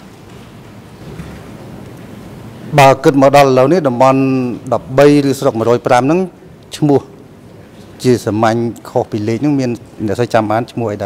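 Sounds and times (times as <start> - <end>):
microphone feed hiss: 0.0 - 11.0.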